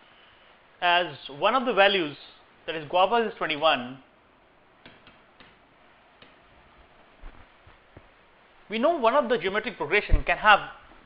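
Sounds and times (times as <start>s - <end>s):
low steady hiss: 0.0s - 11.0s
stylus tapping on pen tablet: 4.8s - 5.6s.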